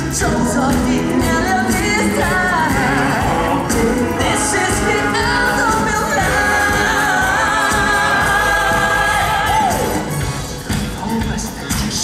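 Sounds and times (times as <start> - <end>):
male vocal group singing: 0.0 - 10.2
live band playing: 0.0 - 12.0.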